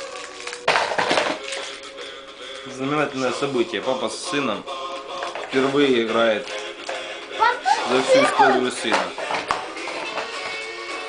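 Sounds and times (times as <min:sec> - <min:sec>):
plastic bricks clattering: 0:00.0 - 0:01.9
music playing: 0:00.0 - 0:11.0.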